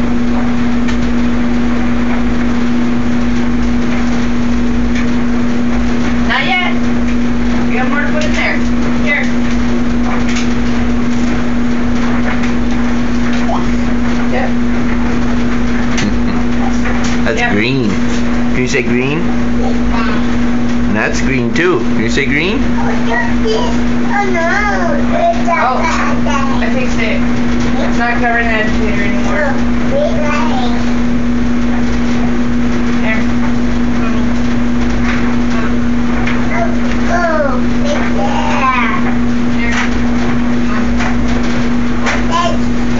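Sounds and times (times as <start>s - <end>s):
steady loud hum: 0.0s - 42.9s.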